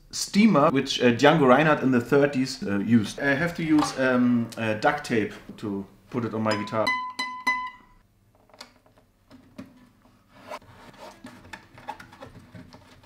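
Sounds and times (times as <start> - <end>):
hands clicking and rustling on guitar: 11.0 - 13.0.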